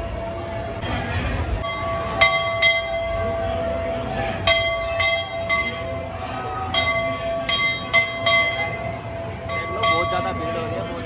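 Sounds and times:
large brass bell ringing: 1.6s - 11.0s.

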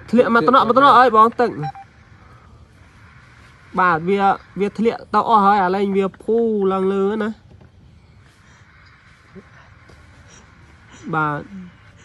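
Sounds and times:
steady tone: 0.0s - 6.0s
faint hiss: 0.0s - 12.0s.

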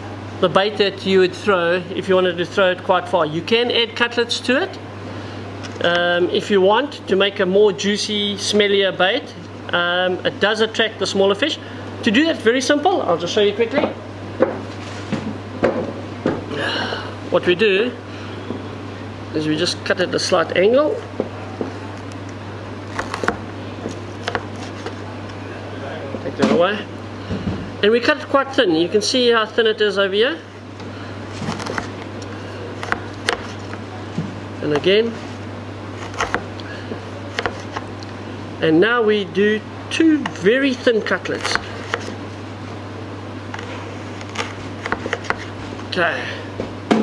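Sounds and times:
steady low hum: 0.0s - 47.0s
knife cutting frozen fish: 22.9s - 25.0s.

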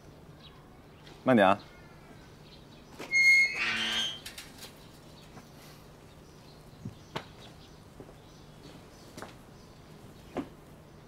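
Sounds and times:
metal gate hinges squeaking: 3.0s - 4.7s.

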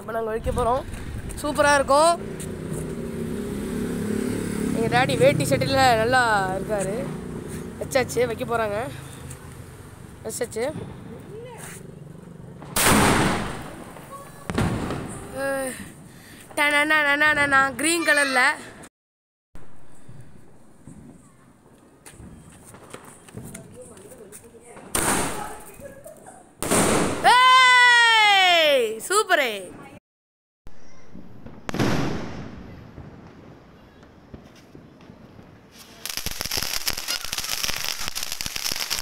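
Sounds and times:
sharp firework crack: 12.6s - 15.4s, 24.9s - 25.7s, 26.6s - 27.4s, 31.1s - 33.6s, 34.3s - 39.0s
firework blast: 12.6s - 16.0s, 26.6s - 27.4s, 31.1s - 39.0s.

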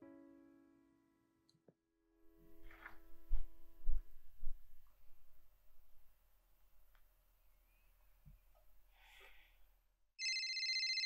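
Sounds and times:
phone ringing with electronic trill: 10.2s - 11.0s.

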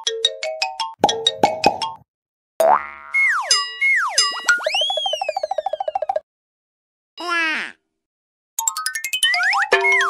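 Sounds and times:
children's music: 8.7s - 10.0s.

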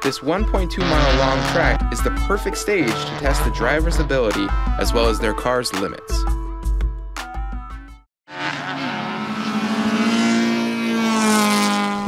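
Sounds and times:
race car engine accelerating: 0.8s - 4.1s, 8.3s - 12.0s.

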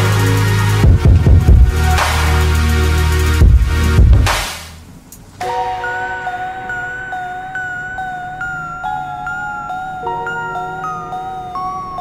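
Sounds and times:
electronic synth music: 0.0s - 4.5s, 5.4s - 12.0s.

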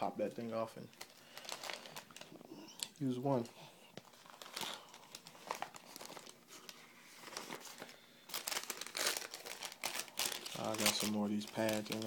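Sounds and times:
dressing packets crinkling: 0.0s - 12.0s.

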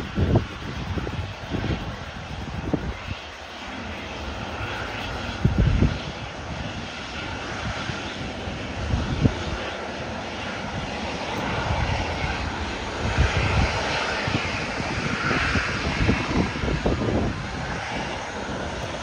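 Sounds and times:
jet engines whining: 0.0s - 19.0s.

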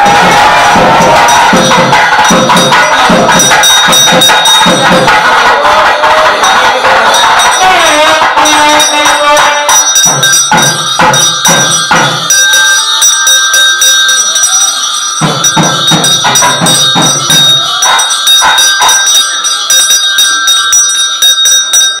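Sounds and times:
temple bells ringing: 0.0s - 5.5s, 6.2s - 22.0s
rhythmic percussion strikes: 0.0s - 22.0s.

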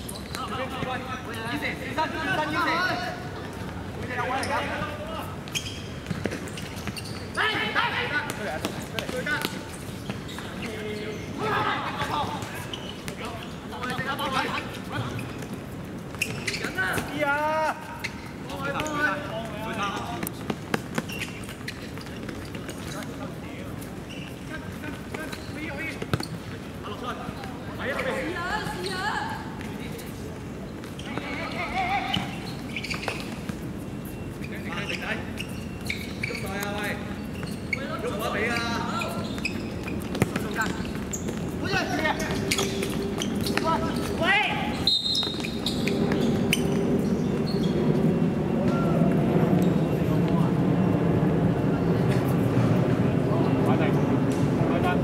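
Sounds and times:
ball kicked and bouncing: 25.1s - 26.6s, 39.3s - 41.6s.

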